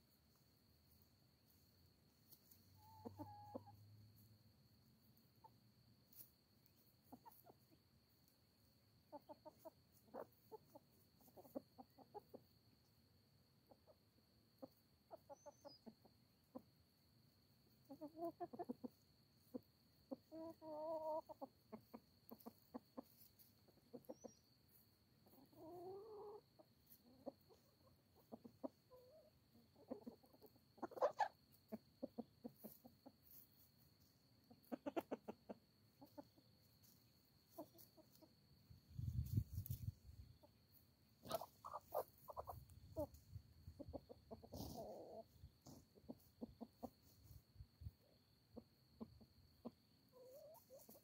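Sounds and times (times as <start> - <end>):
hens clucking softly: 0.0 - 51.0.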